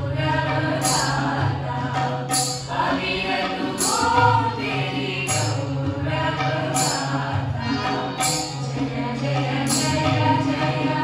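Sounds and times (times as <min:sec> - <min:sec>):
harmonium: 0:00.0 - 0:11.0
mixed chorus singing folk song: 0:00.0 - 0:11.0
tabla: 0:00.0 - 0:11.0
bright jingling percussion stroke: 0:00.8 - 0:01.6, 0:02.2 - 0:10.7.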